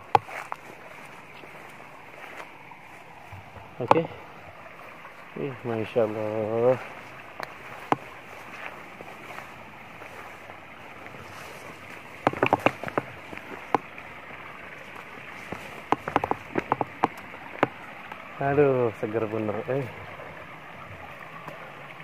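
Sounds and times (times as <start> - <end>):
shallow rocky stream running: 0.0 - 22.0
sharp clicks and crunches: 12.2 - 13.9.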